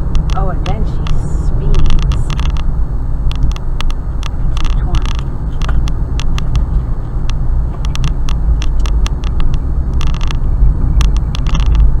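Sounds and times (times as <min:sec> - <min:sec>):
car road and engine rumble: 0:00.0 - 0:12.0
electrical crackles: 0:00.0 - 0:12.0.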